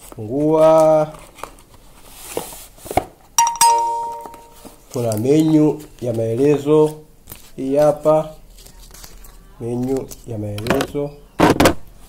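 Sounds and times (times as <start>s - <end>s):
bell-like chime: 3.4s - 4.6s.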